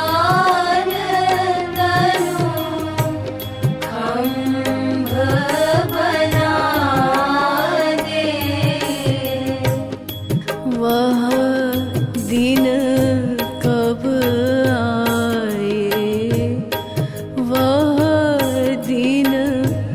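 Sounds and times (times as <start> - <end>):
person singing devotional song: 0.0 - 19.9.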